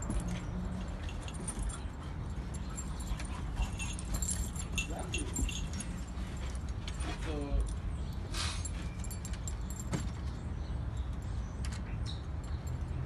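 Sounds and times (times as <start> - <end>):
collar chains and tags jingling: 0.0 - 11.4, 12.2 - 13.0.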